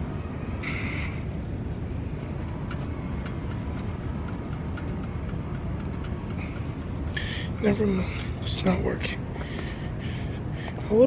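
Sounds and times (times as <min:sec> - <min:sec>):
indoor background rumble: 0:00.0 - 0:11.0
light evenly spaced ticks: 0:02.2 - 0:08.5.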